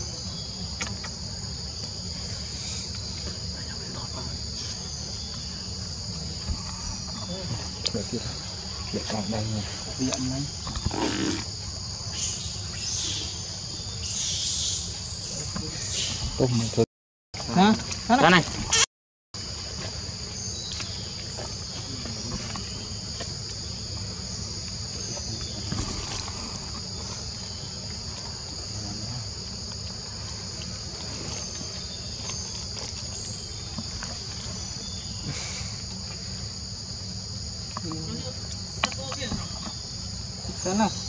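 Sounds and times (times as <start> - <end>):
insect chorus drone: 0.0 - 41.0.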